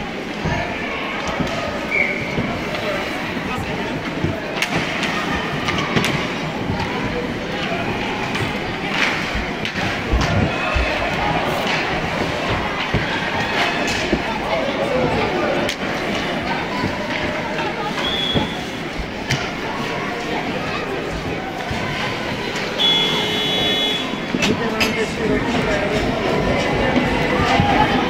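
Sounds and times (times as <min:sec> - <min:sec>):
indistinct voices: 0:00.0 - 0:28.0
hockey sticks and puck knocks: 0:04.0 - 0:14.4.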